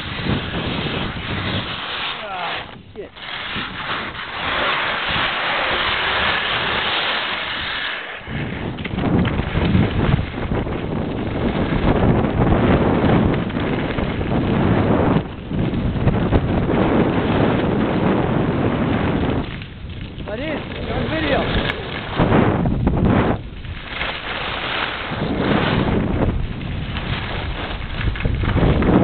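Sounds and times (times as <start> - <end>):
skis sliding on snow: 0.0 - 19.6, 20.2 - 29.0
wind rushing over microphone: 0.0 - 29.0.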